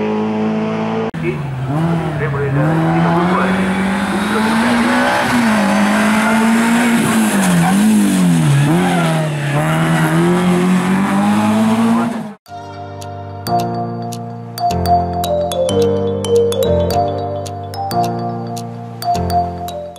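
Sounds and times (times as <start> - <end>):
rally car engine revving: 0.0 - 12.4
music with bell-like notes: 12.5 - 19.9.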